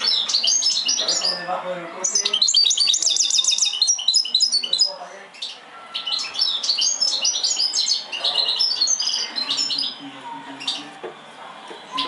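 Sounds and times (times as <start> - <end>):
bird singing twittering trills: 0.0 - 10.9.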